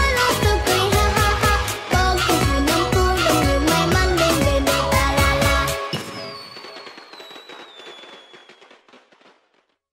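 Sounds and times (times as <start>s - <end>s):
song music: 0.0s - 6.0s
crackling like firecrackers: 5.8s - 9.9s
whistle falling in pitch: 5.9s - 8.8s.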